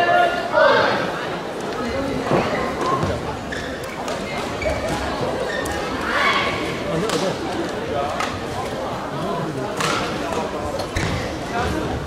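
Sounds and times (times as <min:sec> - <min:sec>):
rackets hitting shuttlecock: 0:09.8 - 0:11.2.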